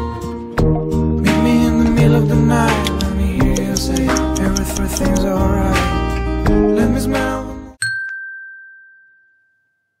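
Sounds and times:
bright bell-like ding: 0:07.8 - 0:10.0.

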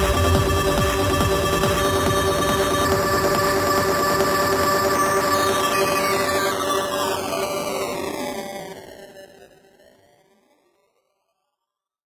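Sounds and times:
synthesizer chord drone: 0:00.0 - 0:09.4.

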